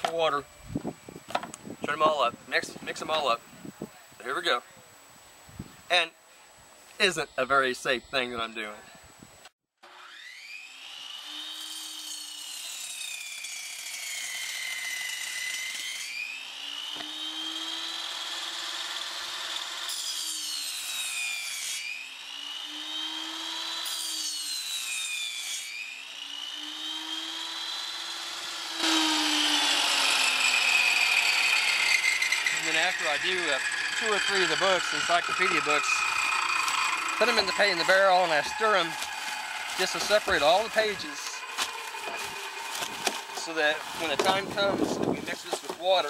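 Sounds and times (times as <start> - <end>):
rough cutting noise: 9.8 - 46.0
table saw cutting through books: 9.8 - 46.0.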